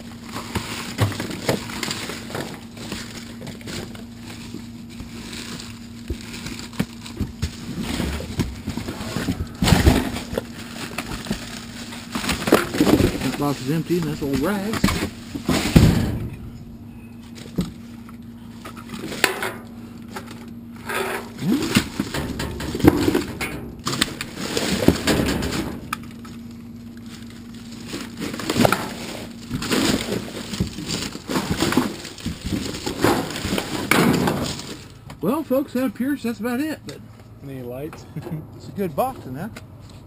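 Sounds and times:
plastic bags crinkling: 0.1s - 15.8s, 26.0s - 35.0s
paper and cardboard shuffling: 0.2s - 16.0s
clinks and knocks in dumpster: 7.2s - 16.5s, 20.8s - 26.0s, 28.2s - 34.9s.

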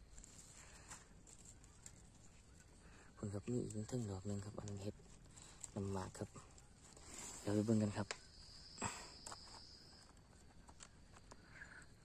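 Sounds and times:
high-pitched insect trill: 7.0s - 12.0s.

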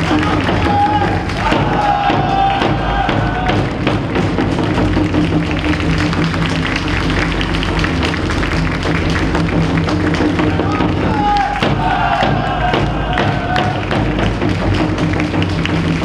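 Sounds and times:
loud long shouted call: 0.0s - 3.7s, 10.4s - 14.0s
steady drum beat: 0.0s - 16.0s.

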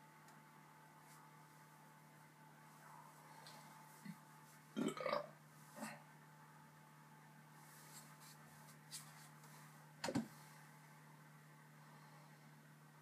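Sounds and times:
man burping: 4.8s - 5.3s.

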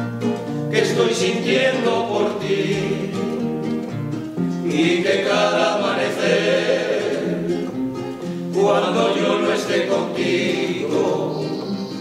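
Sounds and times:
strummed acoustic guitars: 0.0s - 12.0s
male vocal group singing: 0.7s - 3.5s, 4.6s - 12.0s.

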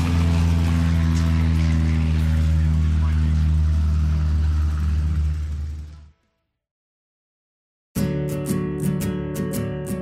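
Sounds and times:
loud low drone: 0.0s - 6.4s
guitar music: 8.0s - 10.0s.

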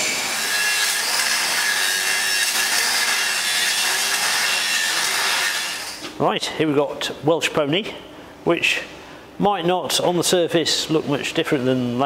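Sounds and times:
electric welding hiss and crackle: 0.0s - 6.1s.

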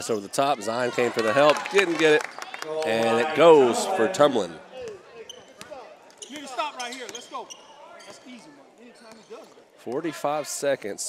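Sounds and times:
players and crowd shouting: 0.6s - 8.4s
sneaker squeaks: 4.8s - 9.7s.

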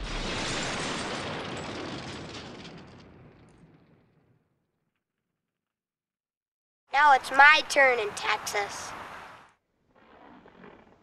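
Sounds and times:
explosion boom: 0.0s - 4.6s.

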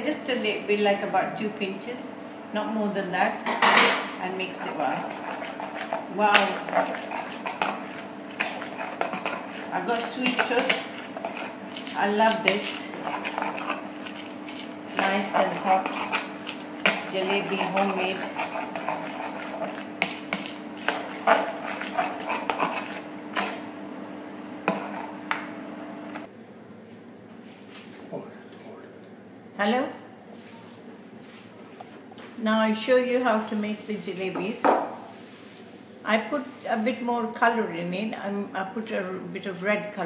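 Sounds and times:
steady low hum: 0.0s - 40.0s
spoon stirring batter in plastic bowl: 4.5s - 23.7s, 24.6s - 25.2s
hand slapping batter in bowl: 15.8s - 23.6s.

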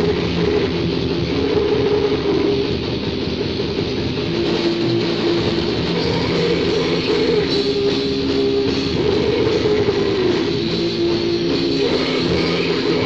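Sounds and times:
distorted guitar chords: 0.0s - 13.0s
drums and cymbals: 0.0s - 13.0s.

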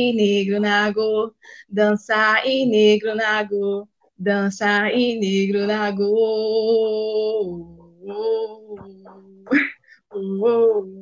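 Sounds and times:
person singing unaccompanied: 0.0s - 11.0s.

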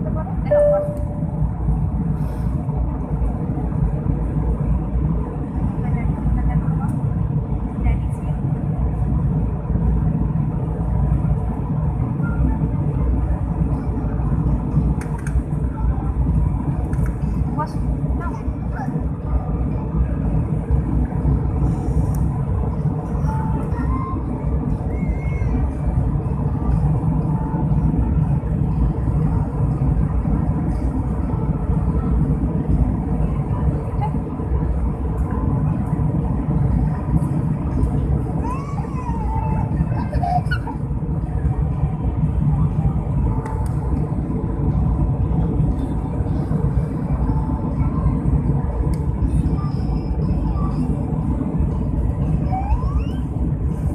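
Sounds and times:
faint passenger voices: 0.0s - 53.9s
jet engine roar in cabin: 0.0s - 53.9s.

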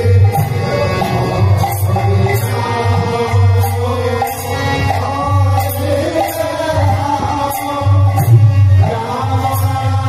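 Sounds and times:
drum keeping time: 0.0s - 10.0s.

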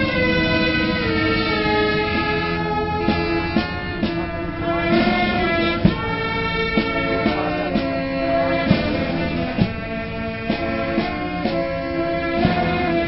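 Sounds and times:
brass band chords: 0.0s - 13.0s
steady struck drum beat: 0.0s - 13.0s.

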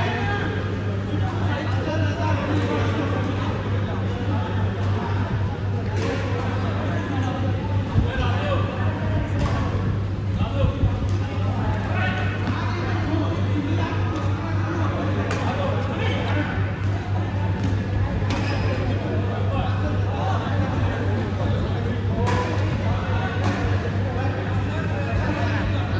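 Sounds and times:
steady low hum: 0.0s - 25.9s
rackets striking shuttlecock: 17.6s - 18.7s.

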